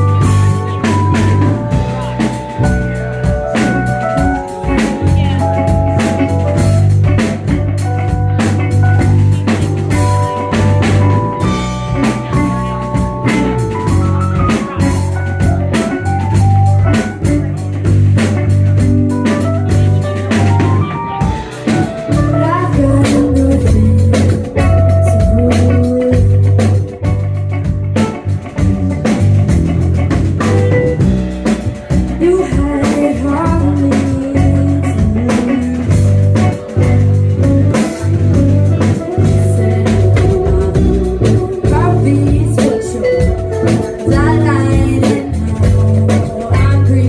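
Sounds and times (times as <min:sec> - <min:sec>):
drum kit beat: 0:00.0 - 0:47.0
electric bass: 0:00.0 - 0:47.0
electric guitar: 0:00.0 - 0:47.0
keyboard: 0:00.0 - 0:47.0
rock band playing: 0:00.0 - 0:47.0.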